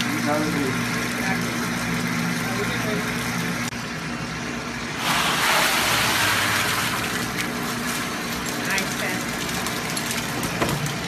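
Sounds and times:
water jets churning: 0.0s - 3.8s, 4.5s - 11.0s
pump motor humming: 0.0s - 11.0s.

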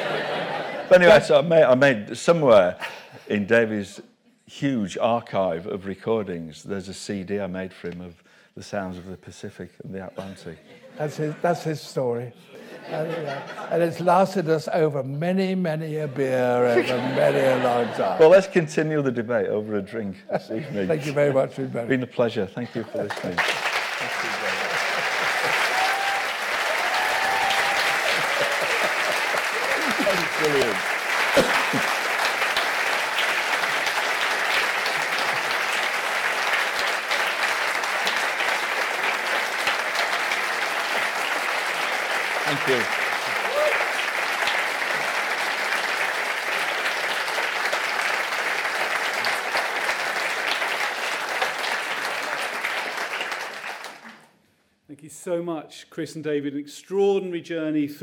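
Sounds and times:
large audience applauding: 0.0s - 1.3s, 16.6s - 18.4s, 22.8s - 54.3s.

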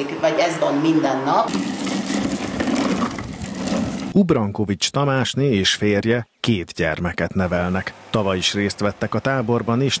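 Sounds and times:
plastic toy wheels rolling on paving: 1.5s - 4.2s.

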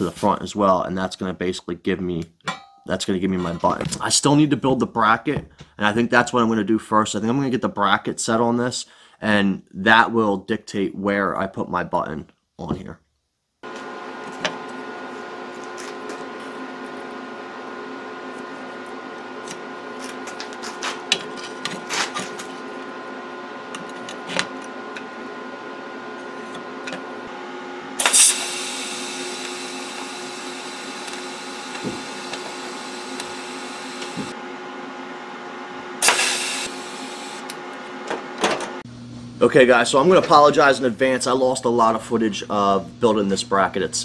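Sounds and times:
steady machine hum: 13.6s - 44.0s.

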